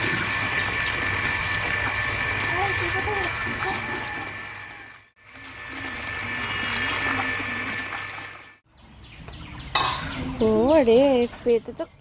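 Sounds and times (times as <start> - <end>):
water splashing and sloshing: 0.0 - 8.6.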